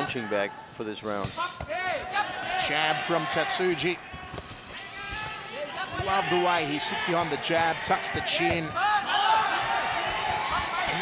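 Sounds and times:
arena crowd: 0.0 - 11.0.

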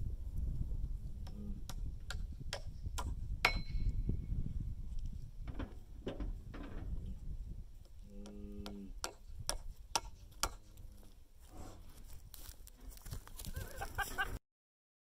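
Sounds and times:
hammer knocking metal nail: 2.1 - 3.9.

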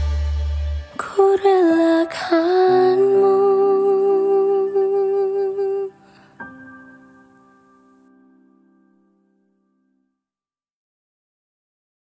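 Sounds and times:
sustained backing chords: 0.0 - 8.6
woman singing a long note: 1.0 - 6.0.

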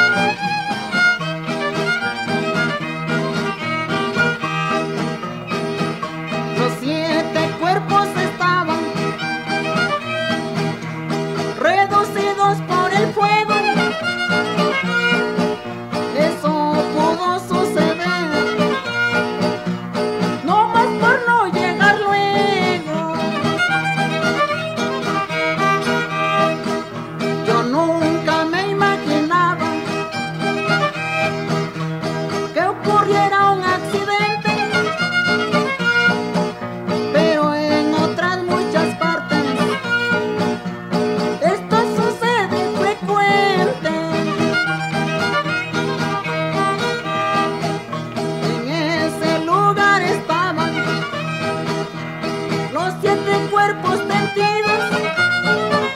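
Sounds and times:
strummed guitar: 0.0 - 55.9
violin sliding melody: 0.0 - 55.9.

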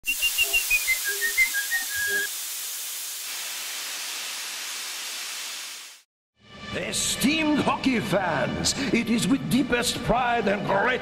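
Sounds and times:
high whistle-like notes: 0.0 - 2.3
steam hissing: 0.0 - 6.0.

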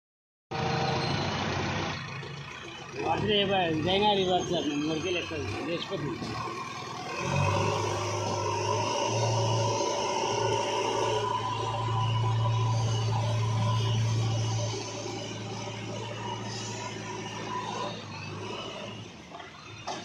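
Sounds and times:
diesel engine running: 0.5 - 20.0.

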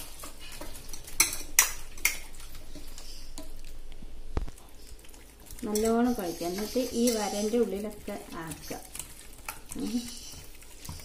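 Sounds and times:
raw chicken mixed by hand: 4.4 - 11.0.

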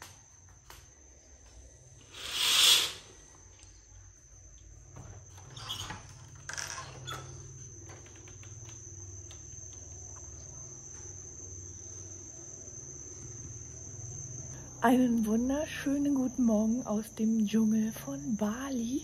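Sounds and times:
insects droning: 0.0 - 19.0.

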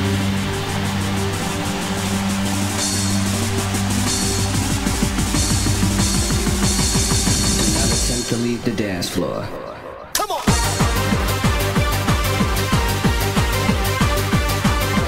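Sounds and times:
hardcore dance music: 0.0 - 15.0.

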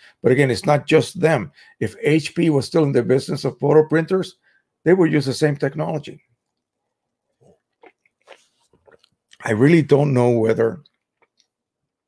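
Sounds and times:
man gulping and swallowing: 6.3 - 9.6, 10.8 - 12.0.

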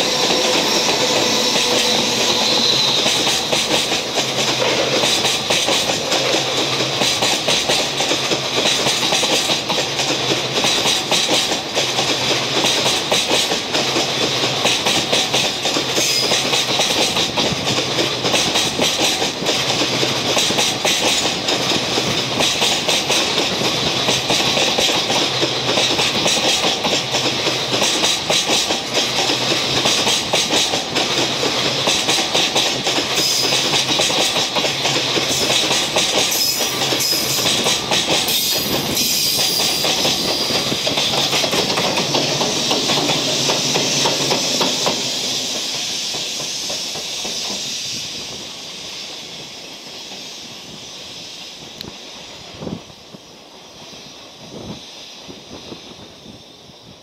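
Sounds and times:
train wheels clattering on track: 0.0 - 57.0.

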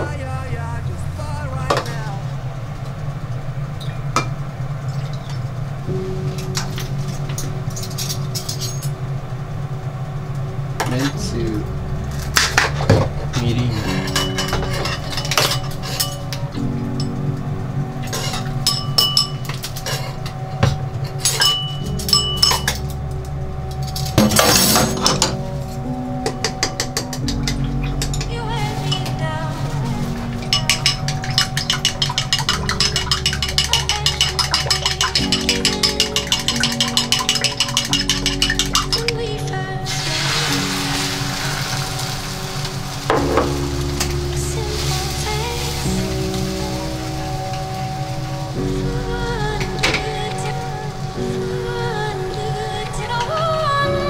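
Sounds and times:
background music: 0.0 - 4.6, 5.5 - 54.0
egg sizzling in a pan: 30.0 - 39.0, 39.8 - 48.9
chopsticks clinking against bowl: 30.5 - 39.1.

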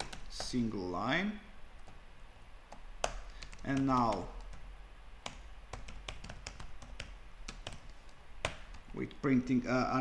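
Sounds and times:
computer keyboard key clicks: 3.0 - 4.6.

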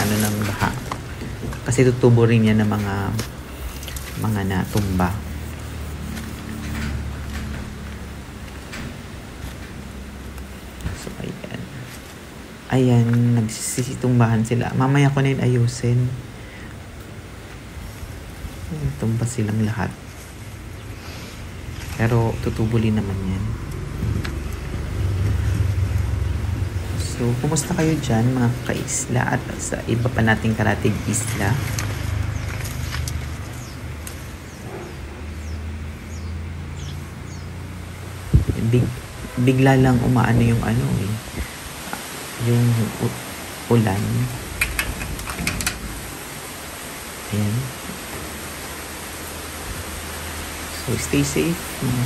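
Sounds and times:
faint hiss: 0.0 - 7.1, 7.7 - 34.7, 36.8 - 52.0
heavy rain falling: 0.0 - 52.0
wind buffeting microphone: 22.4 - 28.6, 38.2 - 41.8.

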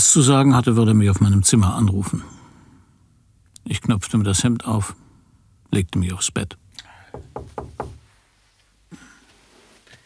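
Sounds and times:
knocking on a door: 7.1 - 8.0.

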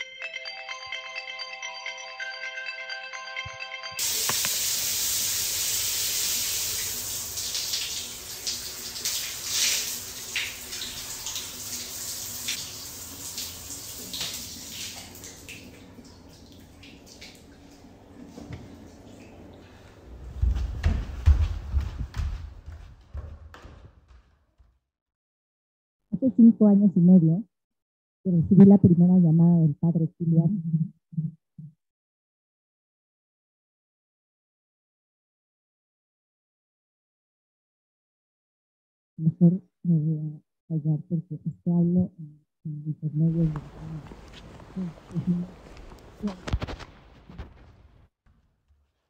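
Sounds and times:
water running from tap: 4.0 - 19.9.

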